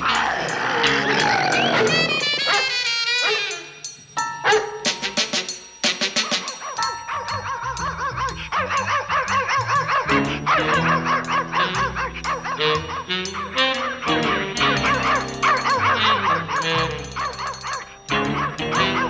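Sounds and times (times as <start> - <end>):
cartoon dogs yapping: 0.0 - 5.1, 6.1 - 19.0
orchestral music: 10.1 - 17.2.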